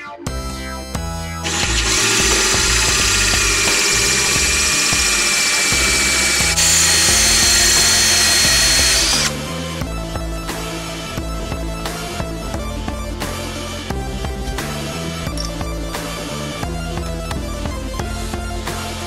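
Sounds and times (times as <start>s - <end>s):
drill grinding into stone: 1.4s - 9.4s.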